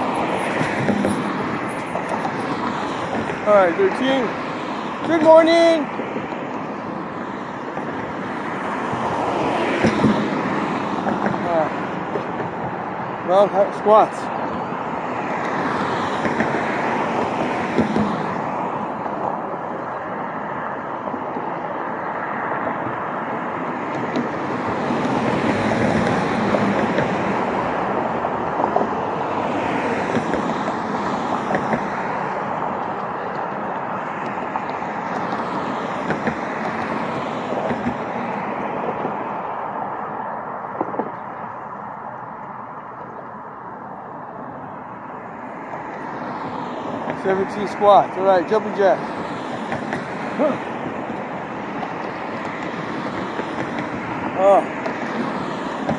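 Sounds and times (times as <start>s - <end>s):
road traffic: 0.0s - 55.9s.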